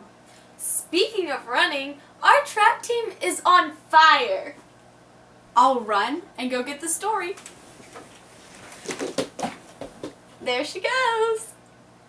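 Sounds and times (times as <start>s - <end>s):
bedding rustling: 7.5s - 10.2s
body bumping off bed: 8.7s - 10.2s.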